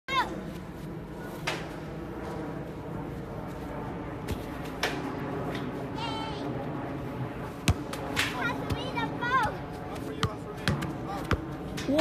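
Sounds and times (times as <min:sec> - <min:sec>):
child exclaiming: 0:00.1 - 0:00.3, 0:06.0 - 0:06.5, 0:08.4 - 0:09.6.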